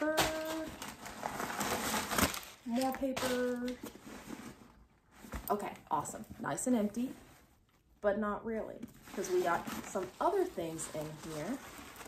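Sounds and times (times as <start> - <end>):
tissue paper rustling: 0.0 - 7.6, 9.0 - 12.0.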